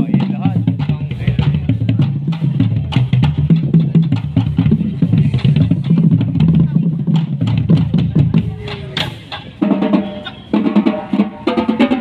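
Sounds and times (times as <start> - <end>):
marching bass drums: 0.0 - 12.0
marching drumline playing: 0.0 - 12.0.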